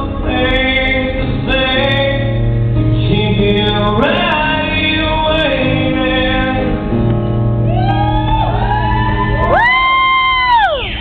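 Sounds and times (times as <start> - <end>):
acoustic guitar through pa: 0.0 - 7.7
person whooping: 7.7 - 11.0.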